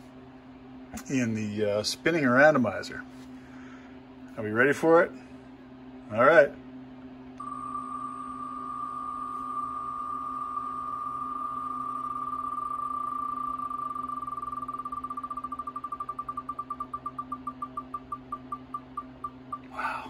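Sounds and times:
spinning name wheel ticking: 14.1s - 19.7s.

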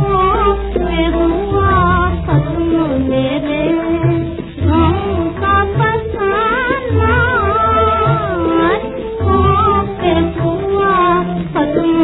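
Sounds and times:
instrumental accompaniment: 0.0s - 12.0s
woman singing film song: 0.0s - 12.0s.

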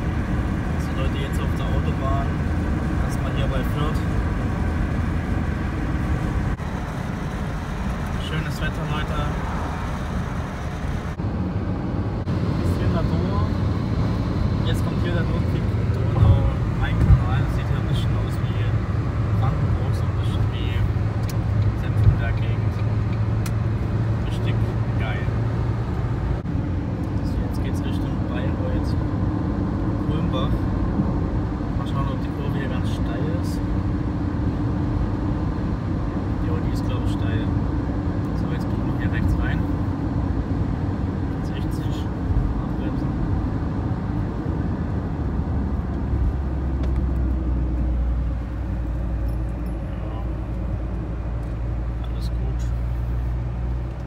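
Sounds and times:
car cabin road and engine noise: 0.0s - 54.0s.

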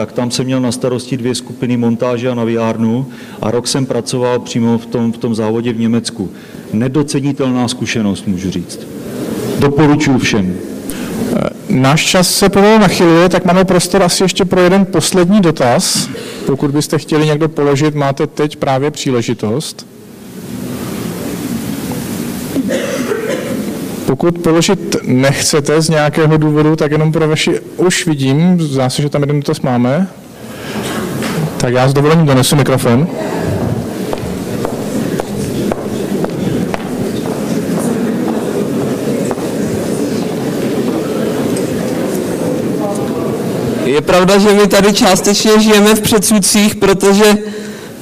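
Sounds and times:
audience talking quietly: 8.3s - 11.8s, 32.8s - 44.0s
footsteps on wooden floor: 34.1s - 38.6s.

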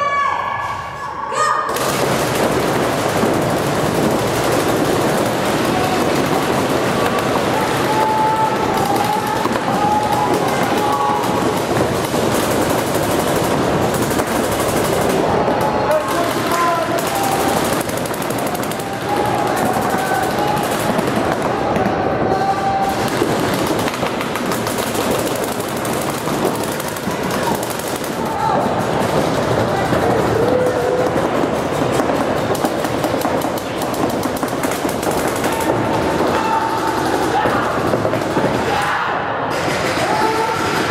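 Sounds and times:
people shouting: 0.0s - 40.9s
paintball markers firing: 1.7s - 38.9s.

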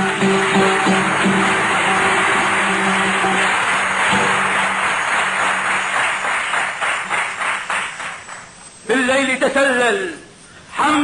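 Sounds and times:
background music with low note: 0.0s - 5.5s
audience applauding: 0.0s - 8.6s.

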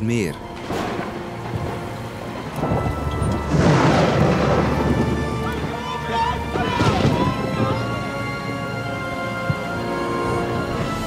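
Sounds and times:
heavy rain pouring: 0.0s - 11.0s
low rumble of thunder: 0.4s - 11.0s.

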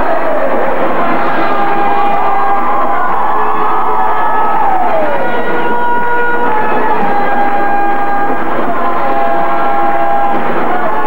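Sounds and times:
audience cheering: 0.0s - 11.0s.

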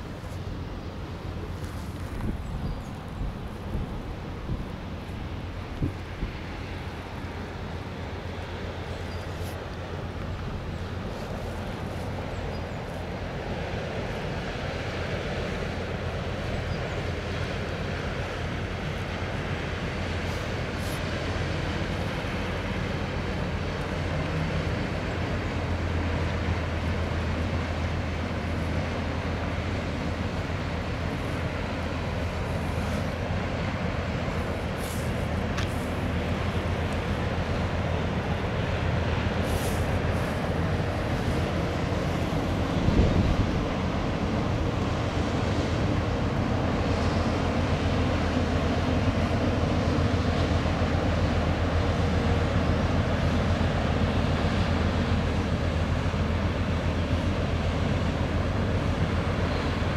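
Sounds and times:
rushing water: 0.0s - 59.9s
ship diesel engines droning: 0.0s - 59.9s
wind: 0.0s - 59.9s.

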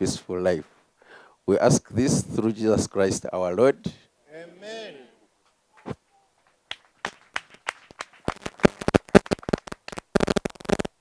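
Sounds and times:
people clapping: 5.7s - 10.8s.

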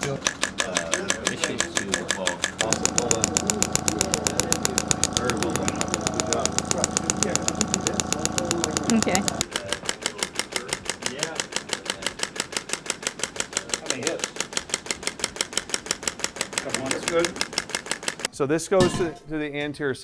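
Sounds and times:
voices talking: 0.0s - 12.2s
machine hum: 0.0s - 13.6s
rapid train of clicks: 0.0s - 18.3s.

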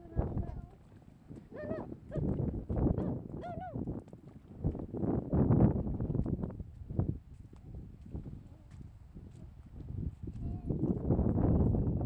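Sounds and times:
footsteps splashing through mud: 0.3s - 11.3s.

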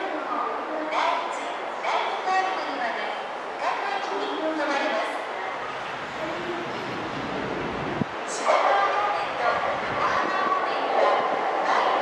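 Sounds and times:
person's voice outdoors: 0.0s - 5.5s, 8.1s - 12.0s.

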